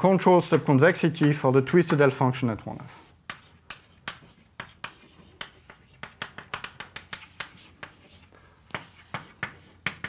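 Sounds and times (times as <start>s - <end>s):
chalk tapping on blackboard: 3.1s - 10.0s.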